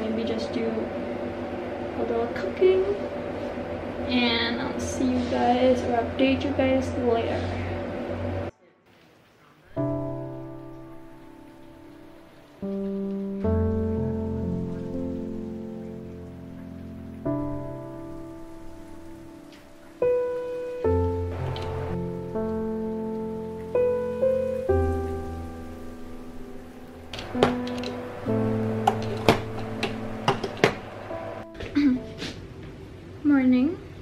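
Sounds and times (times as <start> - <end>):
soft keyboard music with bass: 9.8 - 32.5.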